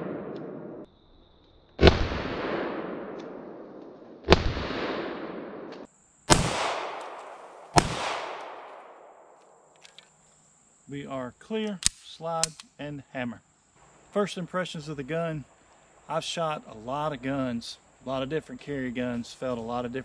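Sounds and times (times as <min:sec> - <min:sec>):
gunshot echo through woods: 0:00.0 - 0:00.9, 0:01.7 - 0:09.6
pistol shots: 0:01.8 - 0:09.3.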